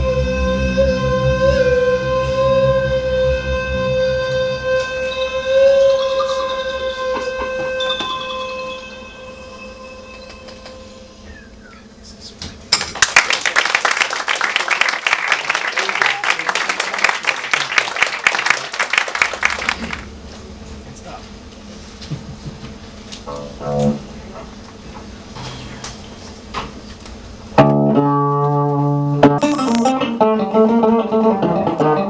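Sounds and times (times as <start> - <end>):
audience applause: 12.8 - 20.1
low bass notes: 23.3 - 24.3, 29.2 - 30.2.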